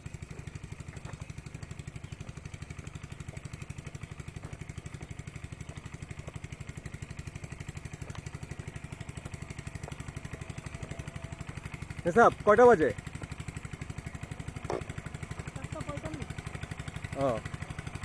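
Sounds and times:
small engine chugging: 0.0s - 18.0s.

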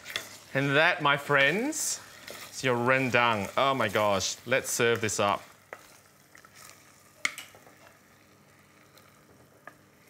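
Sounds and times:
wooden spoon scraping saucepan: 0.0s - 7.9s.

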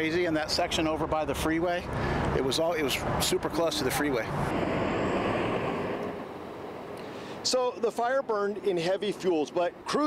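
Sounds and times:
road traffic rushing past: 0.2s - 10.0s.

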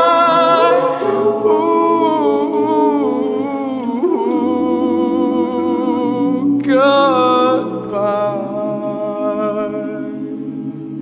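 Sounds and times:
man singing solo: 0.0s - 10.3s
backing voices holding a chord: 0.0s - 11.0s.

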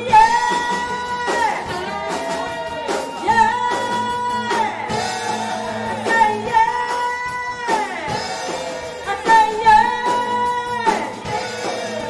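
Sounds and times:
live rock band playing: 0.0s - 12.0s
woman singing lead: 0.0s - 12.0s.

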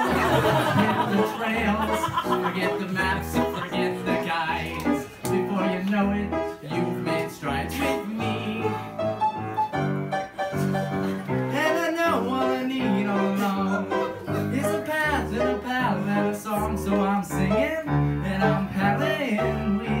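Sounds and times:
men singing: 0.0s - 9.4s, 11.5s - 20.0s
piano accompaniment: 0.0s - 20.0s.

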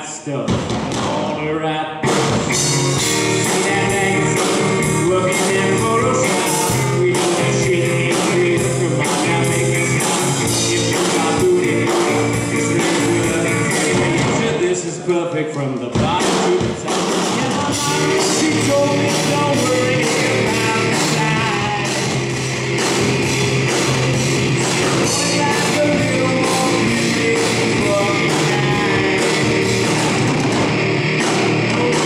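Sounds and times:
man singing: 0.0s - 22.3s, 24.5s - 30.5s, 31.6s - 32.0s
steady drum beat: 0.4s - 1.4s, 2.0s - 32.0s
live rock band playing: 0.5s - 15.1s, 15.9s - 32.0s
electric guitar through an amp: 0.7s - 15.0s, 16.0s - 32.0s.

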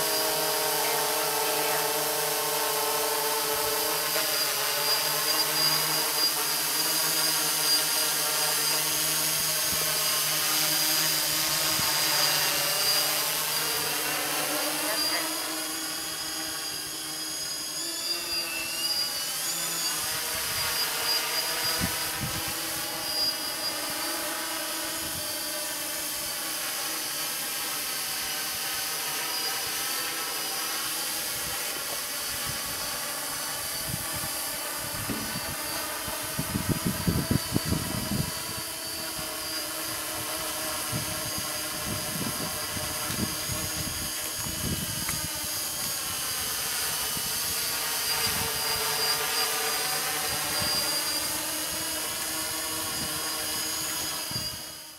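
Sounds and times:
quadcopter motors whining: 0.0s - 54.9s.

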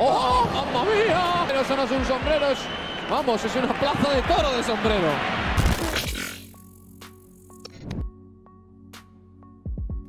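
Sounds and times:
excited sports commentator: 0.0s - 5.3s.

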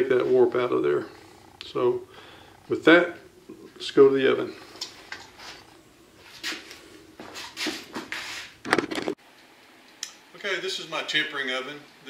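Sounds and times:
rustling and clattering handling: 7.3s - 9.2s.

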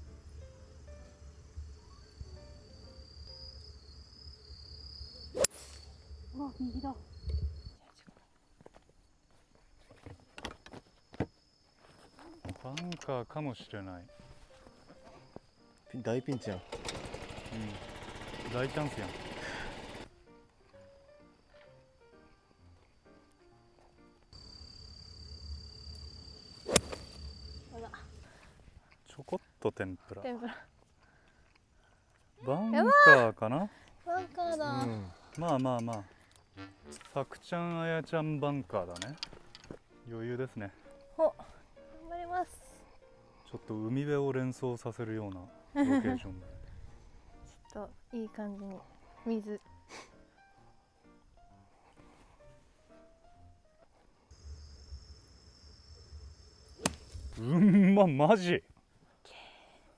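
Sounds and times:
background music: 0.0s - 4.6s, 13.2s - 28.4s, 34.1s - 54.9s
golf club striking ball: 26.7s - 27.1s, 56.8s - 57.2s.

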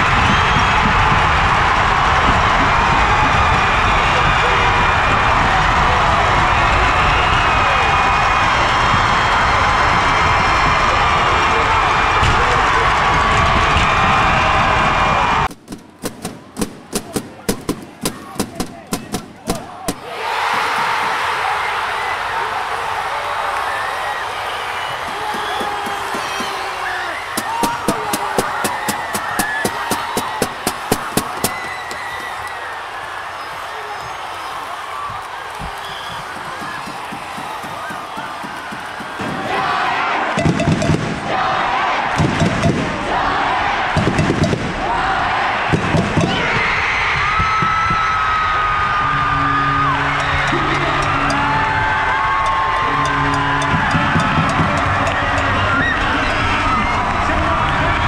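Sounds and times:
crowd roaring and cheering: 0.0s - 58.0s
rhythmic clapping: 24.9s - 33.1s, 35.1s - 39.8s, 50.2s - 55.7s.

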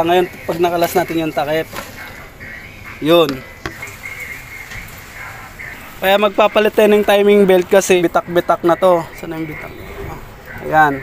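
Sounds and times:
workshop background noise: 0.0s - 11.0s.

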